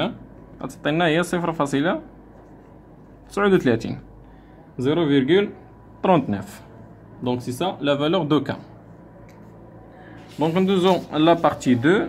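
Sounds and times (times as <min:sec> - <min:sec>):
man speaking: 0:03.3 - 0:04.0, 0:10.4 - 0:12.0.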